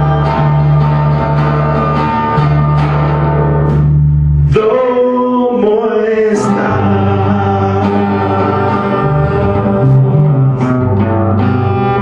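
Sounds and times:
acoustic guitar strings ringing: 0:00.0 - 0:04.3
electric bass note: 0:00.0 - 0:04.6, 0:06.5 - 0:12.0
man singing: 0:04.4 - 0:12.0.

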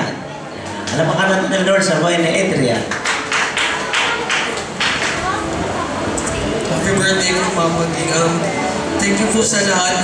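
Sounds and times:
sharp hand claps: 0:02.8 - 0:05.3.

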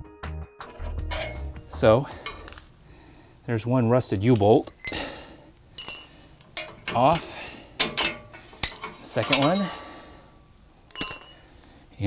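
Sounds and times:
metal clatter: 0:00.6 - 0:02.6, 0:05.8 - 0:09.8, 0:10.9 - 0:11.5
ringing metal clink: 0:01.1 - 0:01.5, 0:05.7 - 0:09.8, 0:10.9 - 0:11.5.

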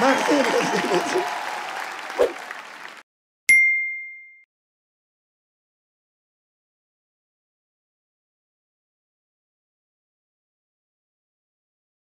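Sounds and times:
bright bell ding: 0:03.5 - 0:04.5.

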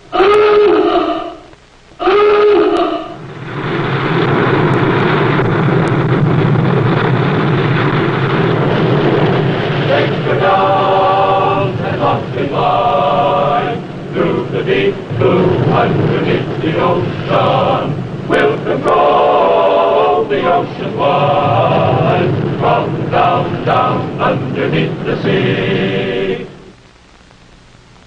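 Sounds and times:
diving alarm klaxon blasts: 0:00.0 - 0:03.3
rush of water and air: 0:03.2 - 0:26.7.

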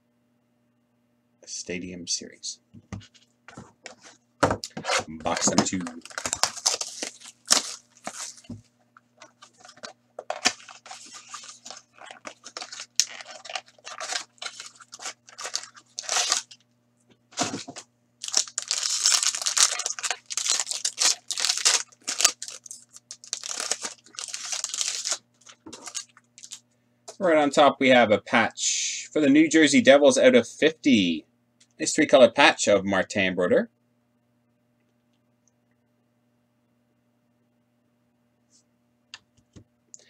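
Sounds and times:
cards rustling: 0:03.0 - 0:16.6, 0:17.3 - 0:26.6
wrappers tearing and crinkling: 0:04.6 - 0:08.6, 0:09.2 - 0:16.6, 0:17.4 - 0:26.6.

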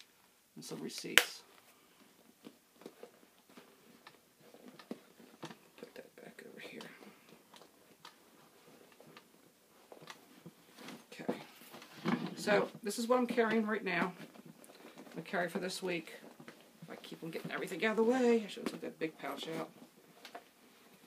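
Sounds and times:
rustling inside a bag: 0:01.6 - 0:12.8, 0:13.4 - 0:21.0.

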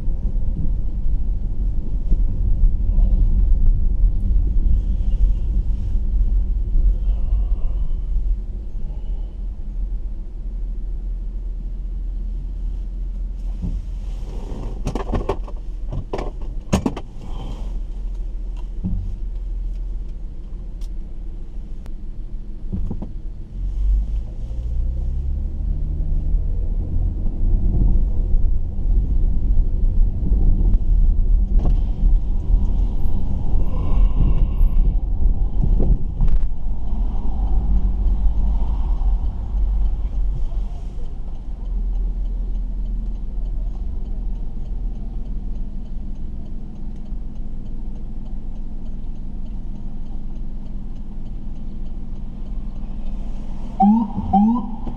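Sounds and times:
car engine and road rumble: 0:00.0 - 0:54.9.

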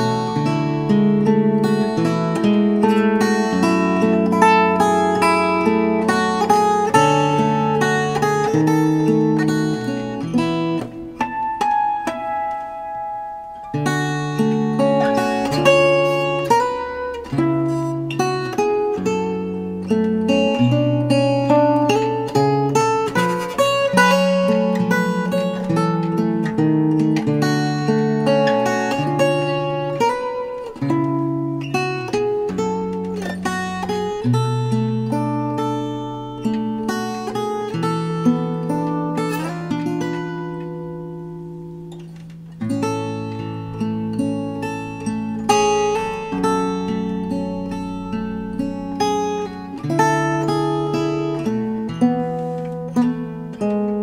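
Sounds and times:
fingerstyle acoustic guitar ballad: 0:00.0 - 0:54.0.

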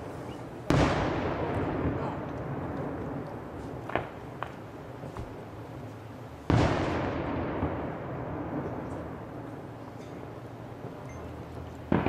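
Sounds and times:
firework bang echo: 0:00.6 - 0:05.4, 0:06.4 - 0:11.0.

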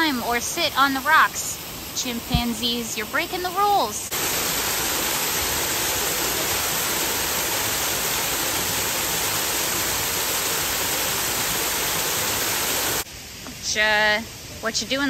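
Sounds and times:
waterfall rushing: 0:00.0 - 0:13.1.

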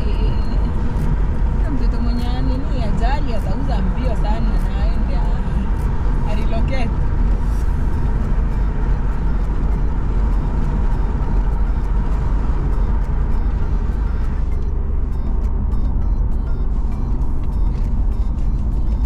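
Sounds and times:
car road and engine noise: 0:00.0 - 0:19.0.

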